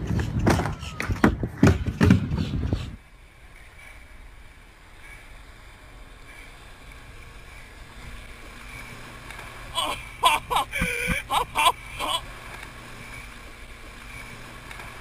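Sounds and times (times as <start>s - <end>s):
motorboat engine: 3.0s - 15.0s
rushing water: 3.0s - 15.0s.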